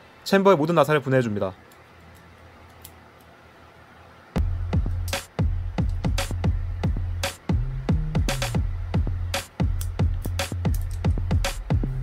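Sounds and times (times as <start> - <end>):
low steady hum: 0.0 - 12.0
screwdriver ticking on screws: 9.8 - 11.2.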